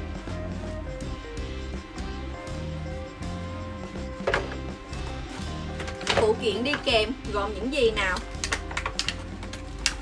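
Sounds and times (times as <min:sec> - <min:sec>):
plastic packaging clicks and taps: 0:08.2 - 0:10.0.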